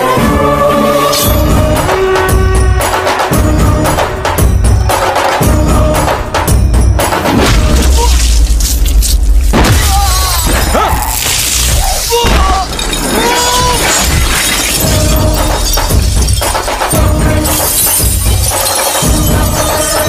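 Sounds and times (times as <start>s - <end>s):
dramatic film music with heavy bass: 0.0s - 12.1s, 14.8s - 20.0s
glass shattering: 7.4s - 20.0s.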